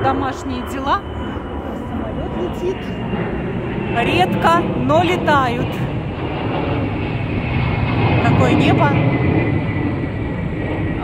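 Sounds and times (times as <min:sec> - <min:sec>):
aircraft engine rumble: 0:00.0 - 0:11.0.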